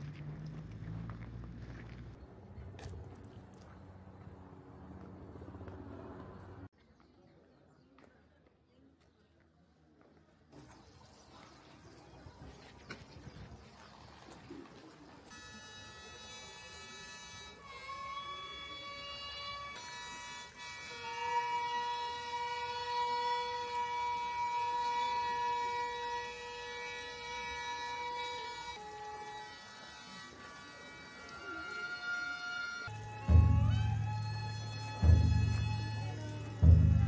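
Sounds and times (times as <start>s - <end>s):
wind instruments sustained sliding notes: 15.3s - 37.0s.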